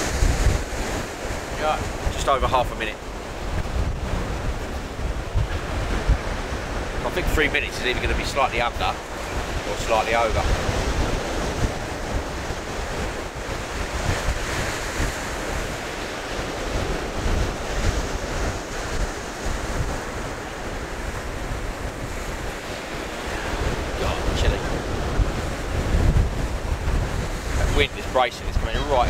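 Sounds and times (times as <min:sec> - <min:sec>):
sea waves breaking on beach: 0:00.0 - 0:29.0
wind buffeting microphone: 0:00.0 - 0:29.0.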